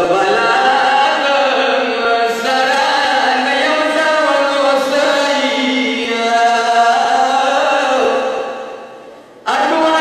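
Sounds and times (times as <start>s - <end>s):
man chanting a lament: 0.0s - 8.8s, 9.4s - 10.0s.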